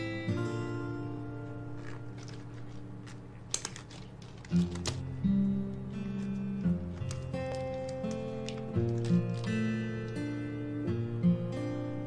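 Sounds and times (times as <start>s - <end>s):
soft background music: 0.0s - 12.0s
rubber gloves snapping: 1.7s - 10.3s.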